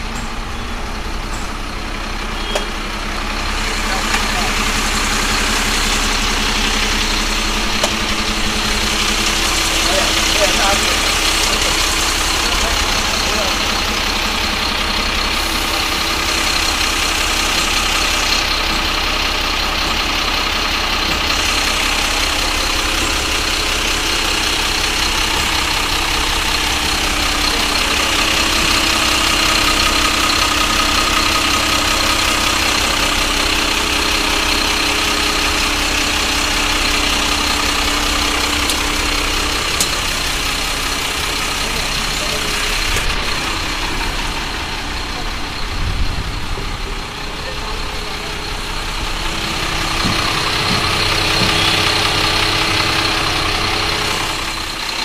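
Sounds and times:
diesel truck engine idling: 0.0s - 55.0s.

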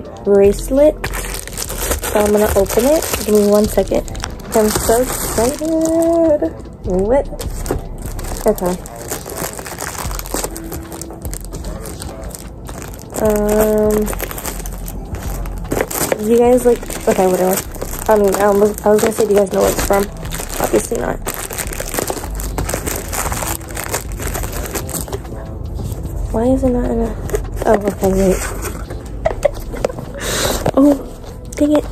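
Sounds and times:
package wrapping crinkling: 1.0s - 6.4s, 7.4s - 25.3s.

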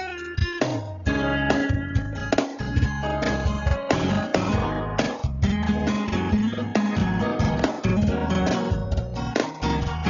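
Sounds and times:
bass line: 0.0s - 10.0s
electric guitar: 0.0s - 10.0s.

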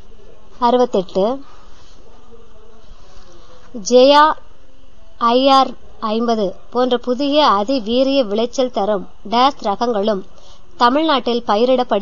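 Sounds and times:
person speaking: 0.0s - 4.4s, 5.2s - 12.0s
background hum and hiss: 0.0s - 12.0s.

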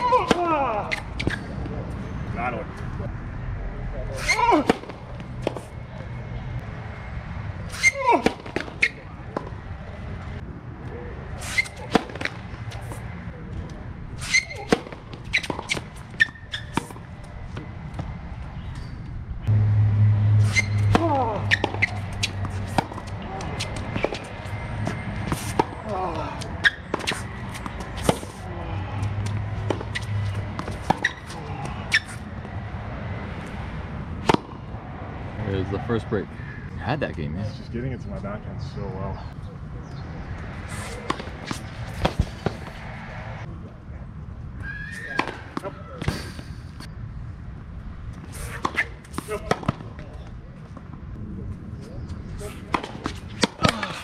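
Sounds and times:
tennis balls struck by rackets: 0.0s - 1.8s, 4.2s - 6.1s, 7.6s - 9.6s, 11.4s - 18.9s, 20.3s - 34.8s, 39.9s - 43.1s, 45.0s - 46.6s, 48.2s - 50.9s, 52.0s - 54.0s.

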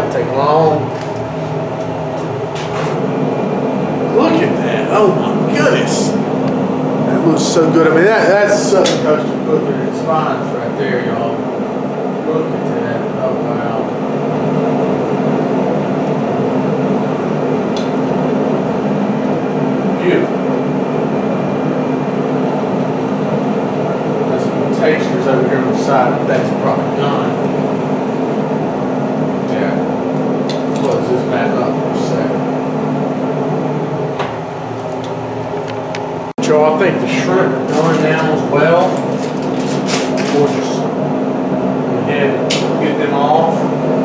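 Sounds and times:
grill motor hum: 0.0s - 44.0s.

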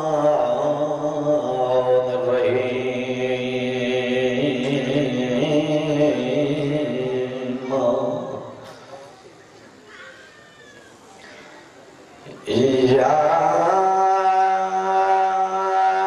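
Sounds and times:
man chanting through echoing pa: 0.0s - 8.9s, 12.2s - 16.0s.

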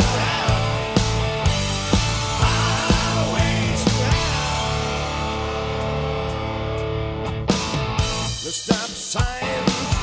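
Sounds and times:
drums hitting: 0.0s - 6.5s, 7.5s - 10.0s
electric guitar chord ringing: 0.0s - 8.3s
electric guitar riff: 0.0s - 8.5s, 9.2s - 10.0s.

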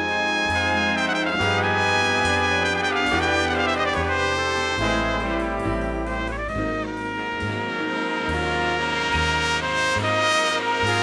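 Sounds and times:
jazz big band playing: 0.0s - 11.0s
solo trumpet: 0.0s - 11.0s.

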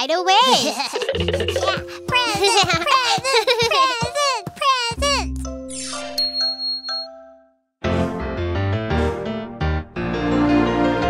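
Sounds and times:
music: 1.1s - 11.0s
cartoon sparkle chime: 5.7s - 7.4s.

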